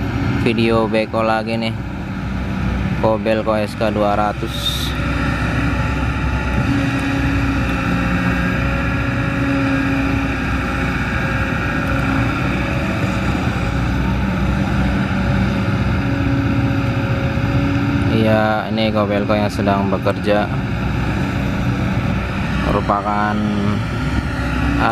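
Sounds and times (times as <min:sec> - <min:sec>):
excavator diesel engine running: 0:00.0 - 0:24.9
high hydraulic whine: 0:00.0 - 0:24.9.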